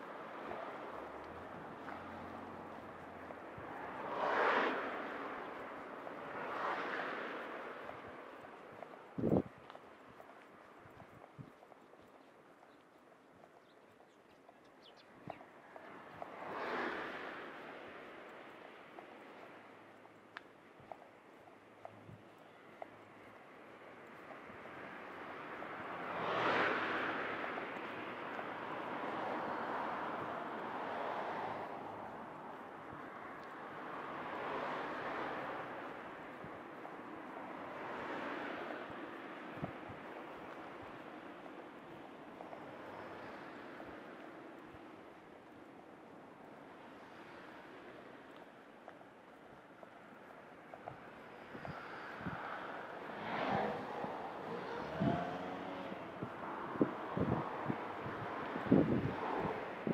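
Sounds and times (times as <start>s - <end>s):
cars passing: 0.0s - 59.9s
wind buffeting microphone: 7.8s - 11.8s, 39.5s - 41.0s, 53.2s - 59.9s.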